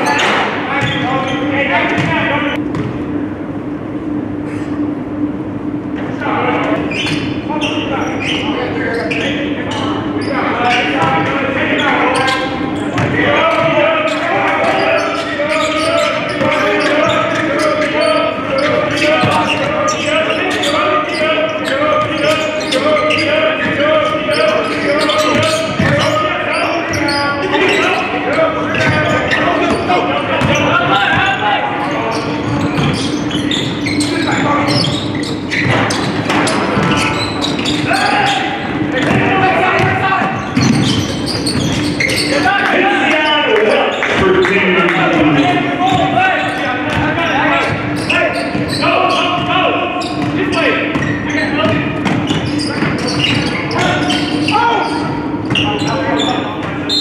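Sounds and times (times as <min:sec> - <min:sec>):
voices of players and spectators: 0:00.0 - 0:57.0.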